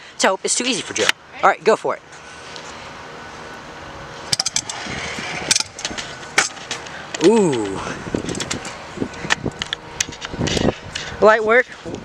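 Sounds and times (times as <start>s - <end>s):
scooter wheels rolling on concrete: 4.2s - 12.0s
scooter clicks and knocks: 4.3s - 4.8s.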